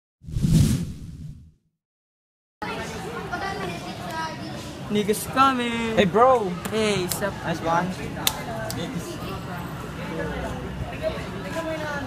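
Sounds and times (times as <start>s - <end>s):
whoosh with low boom: 0.2s - 1.6s.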